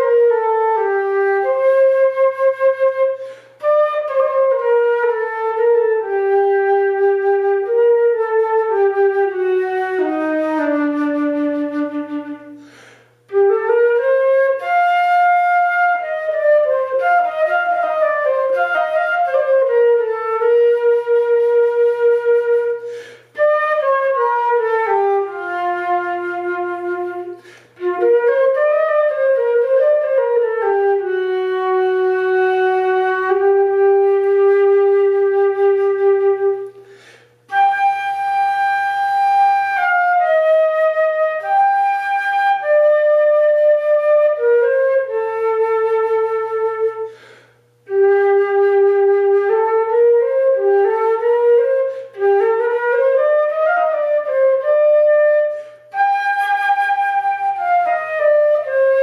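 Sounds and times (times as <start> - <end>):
solo flute melody: 0.0 - 59.0.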